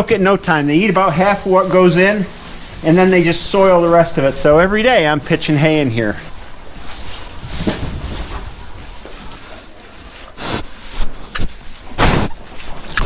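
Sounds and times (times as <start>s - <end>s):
hay rustling as pigs root: 0.0s - 12.9s.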